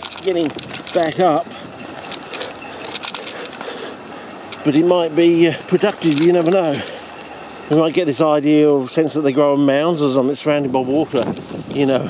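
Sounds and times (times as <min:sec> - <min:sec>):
footsteps through dry scrub: 0:00.0 - 0:12.0
twigs crackling: 0:00.0 - 0:12.0.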